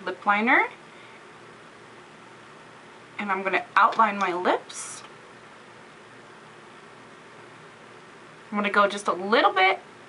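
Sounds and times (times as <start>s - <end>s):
low hiss of room tone: 0.0s - 10.0s.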